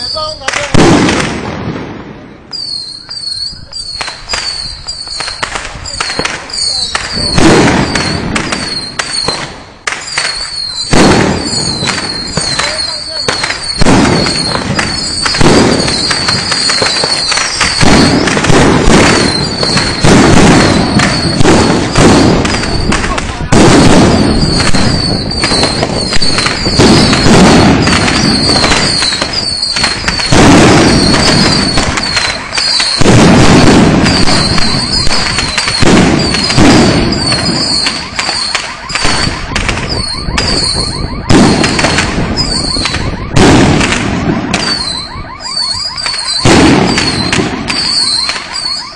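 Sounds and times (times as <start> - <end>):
firecrackers banging and crackling: 0.0 - 48.9
short high whistles: 2.5 - 5.3.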